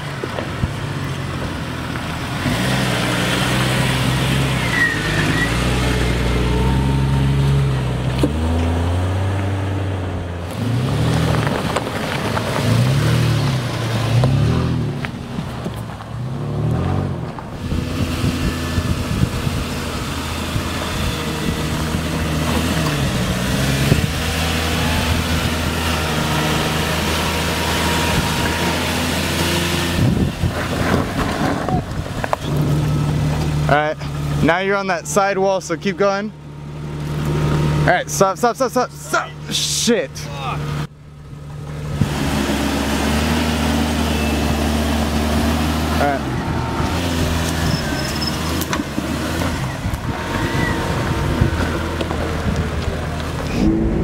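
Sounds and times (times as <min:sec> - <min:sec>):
off-road engines revving: 0:00.0 - 0:54.0.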